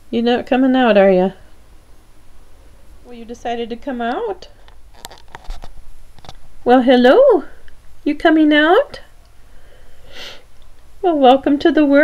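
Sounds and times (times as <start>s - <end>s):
person sniffing: 9.7s - 10.5s.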